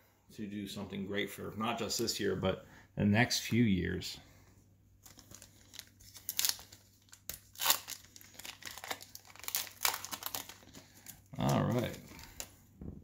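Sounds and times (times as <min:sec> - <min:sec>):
foil wrapper crinkling and tearing: 0:05.0 - 0:12.5.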